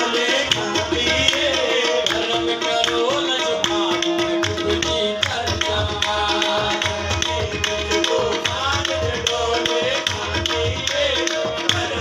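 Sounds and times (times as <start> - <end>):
harmonium holding notes: 0.0 - 12.0
tabla drumming: 0.0 - 12.0.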